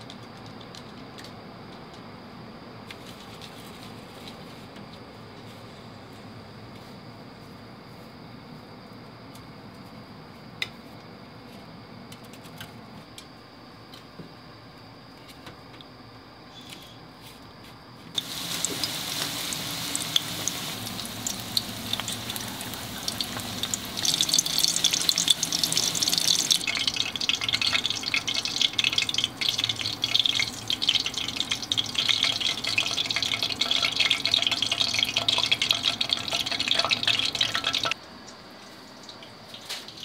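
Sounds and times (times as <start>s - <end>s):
patties deep-frying in oil: 18.1s - 40.0s.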